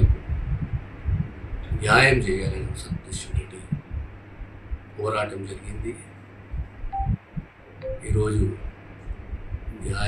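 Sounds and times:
dull low thumps: 0.0s - 5.0s, 6.4s - 10.0s
low electrical hum: 0.0s - 10.0s.

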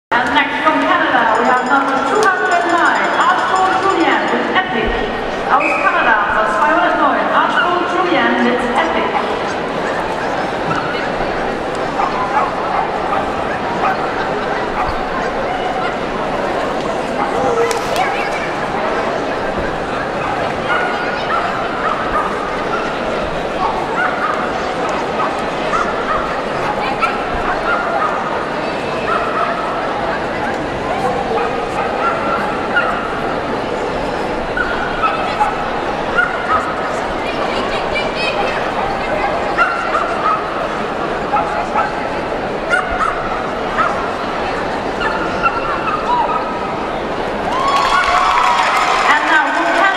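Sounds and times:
indoor arena crowd hubbub: 0.0s - 49.9s.

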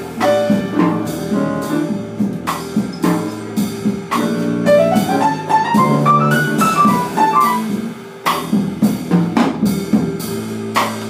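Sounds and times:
snare and cymbal hits: 0.0s - 11.0s.

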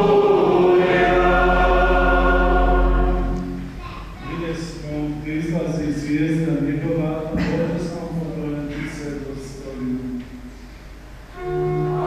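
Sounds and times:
man speaking: 4.2s - 10.2s.

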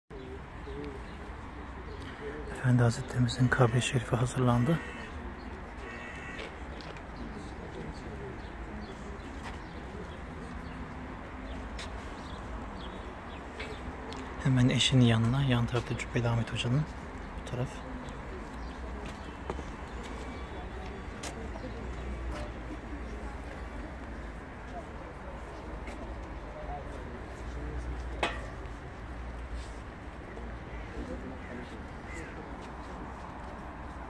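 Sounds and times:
birds chirping and calling: 0.1s - 24.2s, 29.6s - 33.4s
murmur of people talking: 0.1s - 34.0s.

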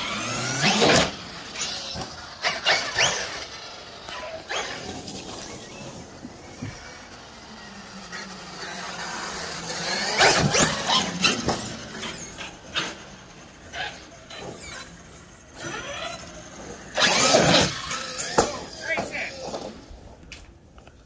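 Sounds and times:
electric motor whining: 0.0s - 20.2s.

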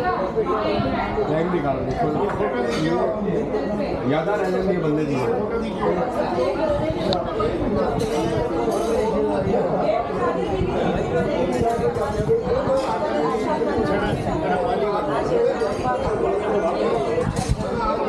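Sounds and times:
overlapping conversation chatter: 0.0s - 18.0s.

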